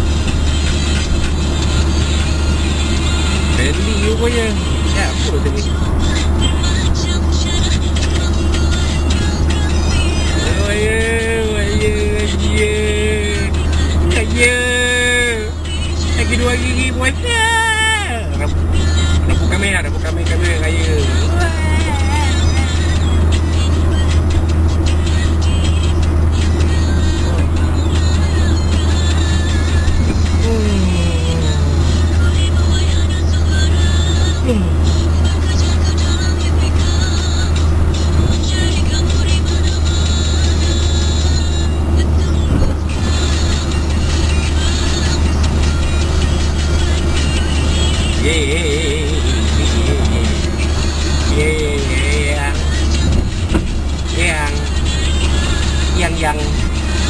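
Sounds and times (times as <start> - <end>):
car cabin drone at highway speed: 0.0 - 57.0
music with singing voice: 0.0 - 57.0.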